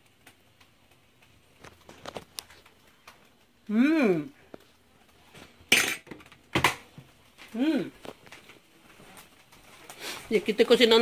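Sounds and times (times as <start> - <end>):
kitchen utensils clattering: 5.7 - 6.9.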